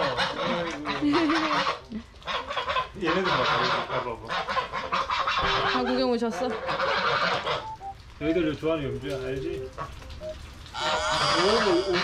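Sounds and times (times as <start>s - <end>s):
geese honking: 0.0s - 7.8s, 9.7s - 10.1s, 10.7s - 12.0s.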